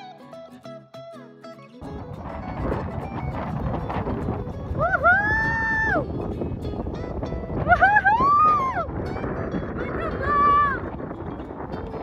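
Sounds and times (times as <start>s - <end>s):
strong wind buffeting microphone: 1.8s - 12.0s.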